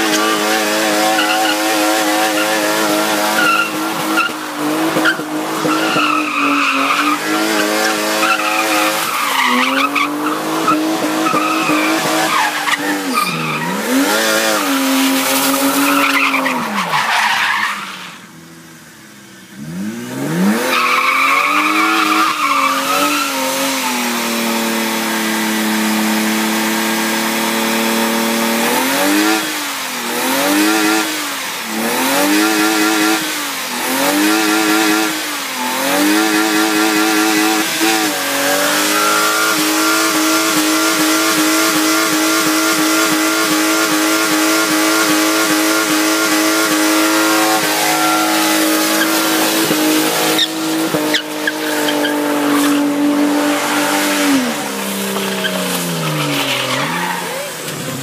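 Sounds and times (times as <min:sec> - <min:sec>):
car engine revving hard: 0:00.0 - 0:18.5, 0:19.5 - 0:58.0
spinning tyres hissing and squealing: 0:00.0 - 0:58.0.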